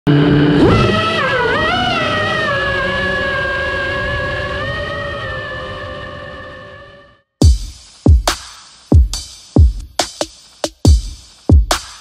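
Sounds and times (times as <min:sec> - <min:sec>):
drone motors whining: 0:00.1 - 0:07.1.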